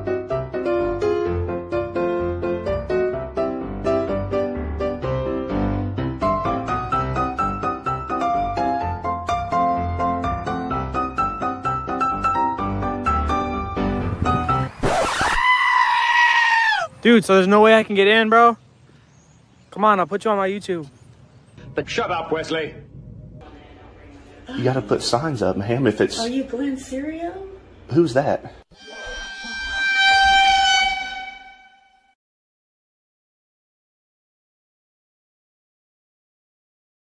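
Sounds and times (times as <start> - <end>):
piano music: 0.0 - 14.7, 28.8 - 32.1
high held cry: 15.2 - 17.0
horn-like blast: 28.7 - 32.2.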